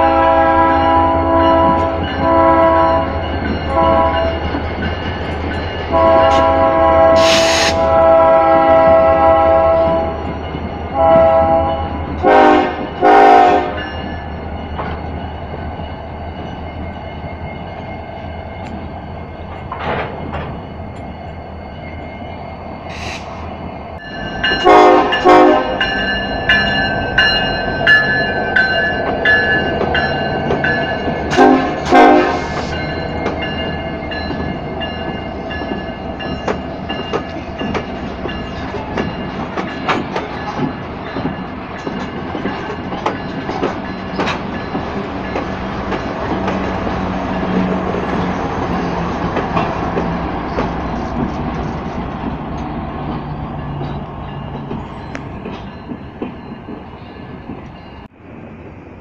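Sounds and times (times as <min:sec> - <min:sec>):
locomotive horn short blasts: 0:00.0 - 0:03.1, 0:05.9 - 0:10.2, 0:11.0 - 0:13.8, 0:24.6 - 0:25.9, 0:31.3 - 0:32.7
diesel locomotive engines running: 0:00.0 - 0:59.0.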